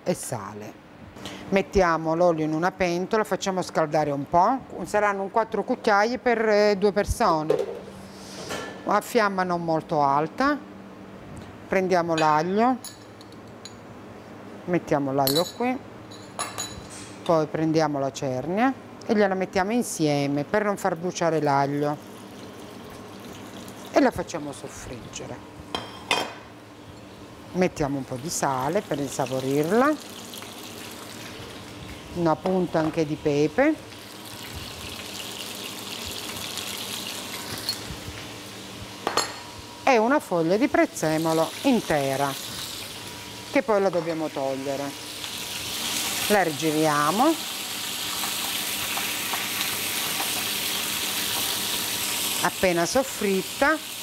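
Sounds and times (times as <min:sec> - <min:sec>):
fish sizzling in hot oil: 0:28.5 - 0:32.1, 0:33.9 - 0:37.9, 0:41.1 - 0:43.6, 0:44.9 - 0:54.0.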